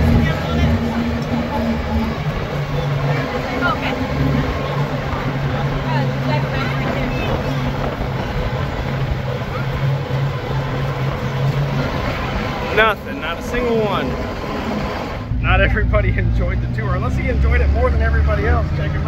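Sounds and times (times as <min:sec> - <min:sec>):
truck engine droning: 0:00.0 - 0:19.0
wind and road noise: 0:00.0 - 0:19.0.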